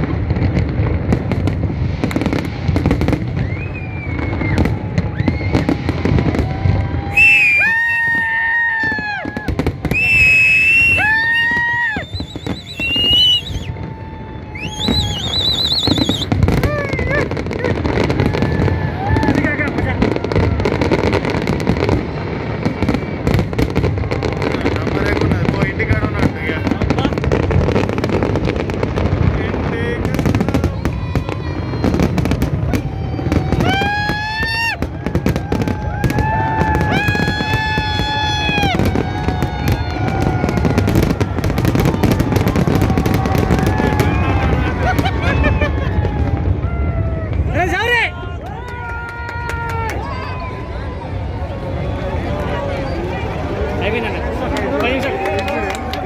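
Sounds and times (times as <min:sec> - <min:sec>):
fireworks crackling and banging: 0:00.0 - 0:56.0
crowd shouting: 0:02.1 - 0:56.0.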